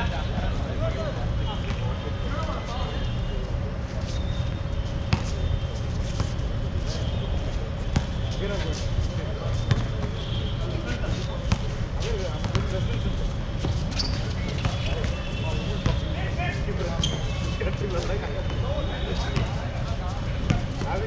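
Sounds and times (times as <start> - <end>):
basketball bouncing on court: 5.1 - 5.4, 7.9 - 8.2, 9.7 - 10.4, 12.4 - 12.9, 15.8 - 16.1, 20.4 - 21.0.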